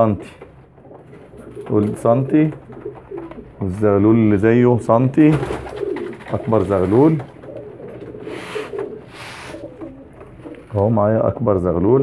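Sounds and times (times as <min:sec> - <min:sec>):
pigeons cooing: 0:00.6 - 0:04.7, 0:05.3 - 0:11.0.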